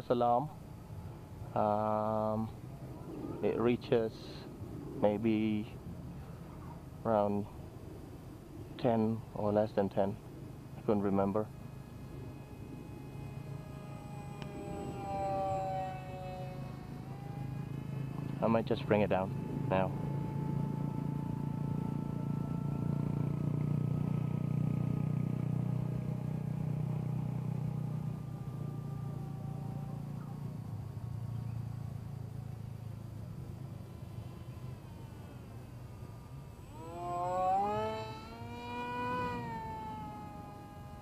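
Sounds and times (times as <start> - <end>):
low hum: 0.0 - 41.0
model plane motor whining: 0.6 - 41.0.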